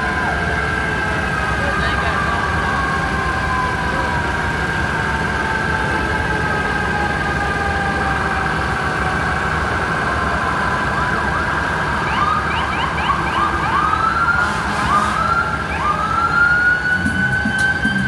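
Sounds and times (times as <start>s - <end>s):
sirens wailing and whooping: 0.0s - 18.0s.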